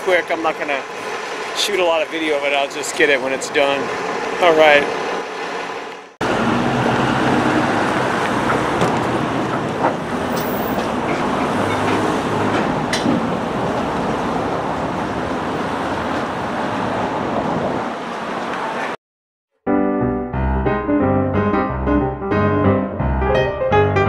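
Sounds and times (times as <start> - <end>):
road traffic driving past: 0.0 - 19.0.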